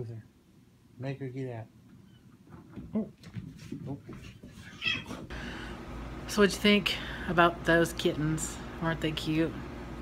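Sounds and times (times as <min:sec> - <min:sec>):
kitten meowing: 0:04.7 - 0:05.2.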